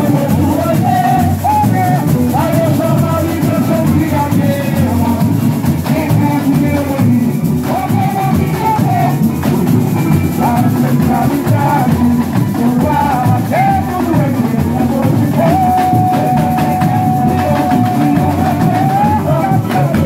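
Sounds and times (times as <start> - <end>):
person singing: 0.0 - 20.0
samba drum section playing: 0.0 - 20.0.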